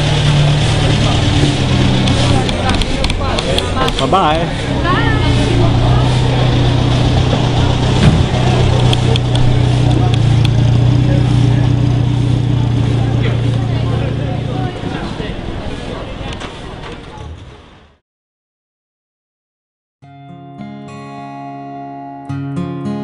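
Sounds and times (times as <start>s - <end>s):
motor humming: 0.0s - 15.4s
people's voices: 0.0s - 17.6s.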